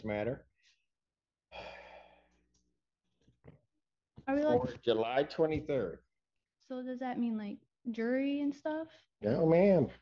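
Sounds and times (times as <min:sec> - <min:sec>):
person sighing: 0:01.5 - 0:02.2.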